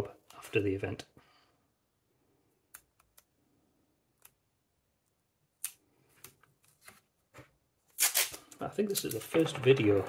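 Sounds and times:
tape crackles and clicks: 0:04.1 - 0:10.0.

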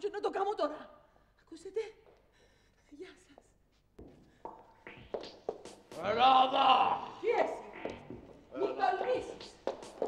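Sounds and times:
footsteps on hard floor: 0:03.8 - 0:06.0, 0:07.8 - 0:10.0.

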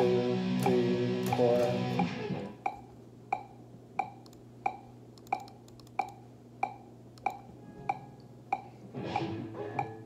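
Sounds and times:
electric guitar bent notes: 0:00.0 - 0:02.6, 0:08.9 - 0:10.0
amp hum: 0:00.0 - 0:10.0
metronome clicking: 0:00.6 - 0:10.0.

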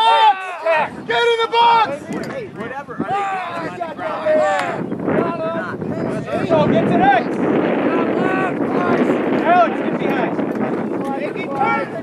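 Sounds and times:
people shouting: 0:00.0 - 0:10.2, 0:11.0 - 0:12.0.

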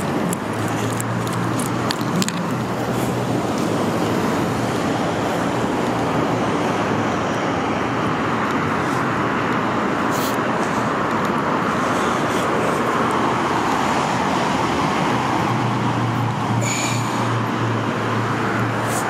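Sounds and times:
freeway traffic rush: 0:00.0 - 0:19.0.

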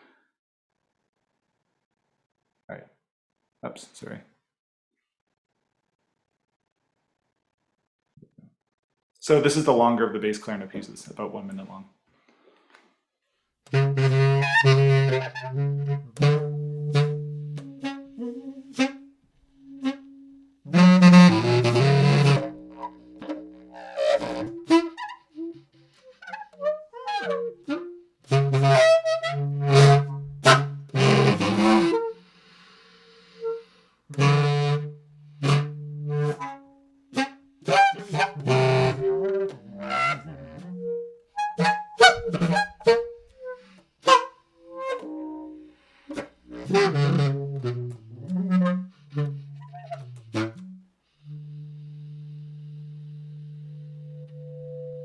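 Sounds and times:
breath noise: 0:12.1 - 0:13.5, 0:32.2 - 0:34.1, 0:45.6 - 0:46.5
bass clarinet bursts and notes: 0:13.7 - 0:55.0
low held clarinet tone: 0:13.7 - 0:55.0.

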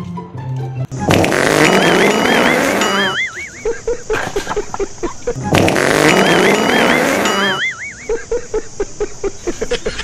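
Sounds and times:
wet fart sound effect: 0:00.9 - 0:03.2, 0:05.4 - 0:07.6
warbling tone: 0:01.0 - 0:04.0, 0:05.3 - 0:08.2.

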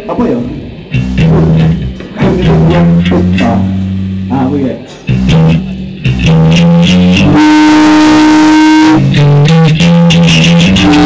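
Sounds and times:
distorted electric guitar note: 0:00.6 - 0:11.0
punk rock band playing: 0:00.7 - 0:11.0.

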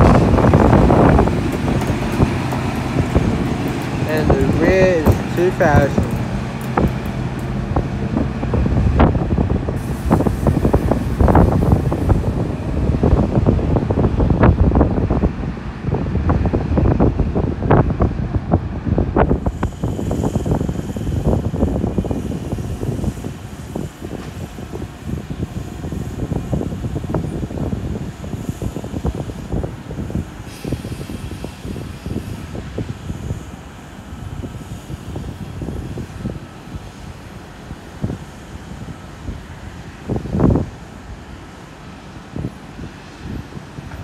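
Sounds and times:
wheels clanking on track: 0:00.0 - 0:14.9
diesel train rumbling: 0:00.0 - 0:44.0.

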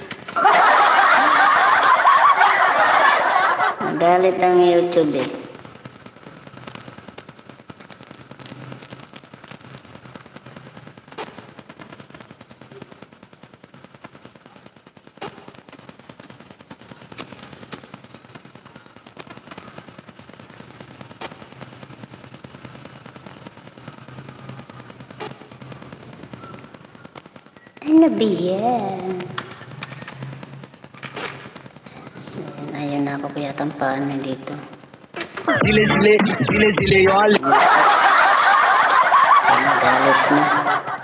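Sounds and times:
irregular crackling: 0:00.0 - 0:41.0.

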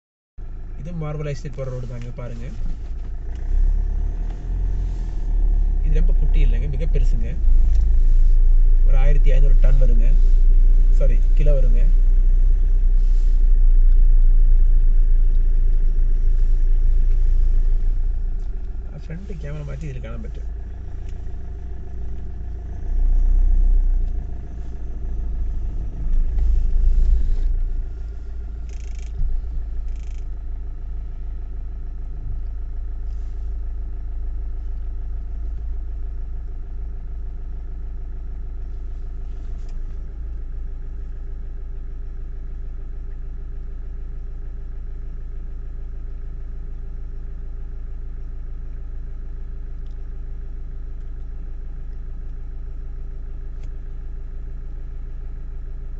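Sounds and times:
vehicle engine idling: 0:00.4 - 0:55.9.

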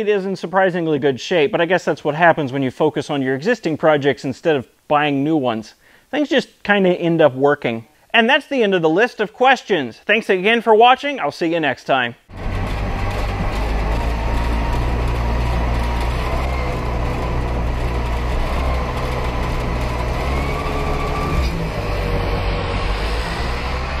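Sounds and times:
small car engine driving by: 0:12.3 - 0:24.0.

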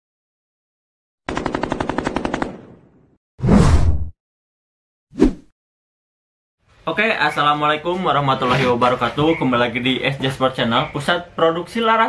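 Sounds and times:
machine-gun fire: 0:01.3 - 0:02.9.

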